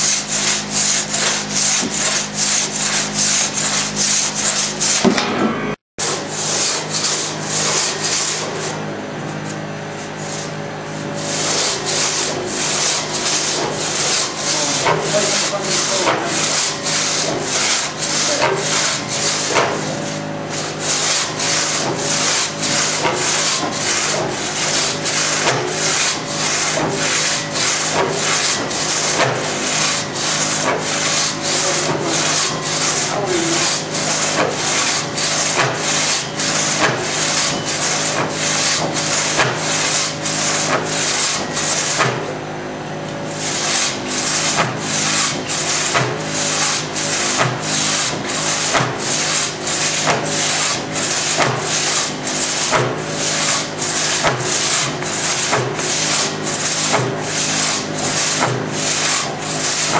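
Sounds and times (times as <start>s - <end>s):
crosscut saw rasping through log: 0.0s - 5.1s, 6.0s - 8.8s, 11.2s - 42.3s, 43.3s - 59.9s.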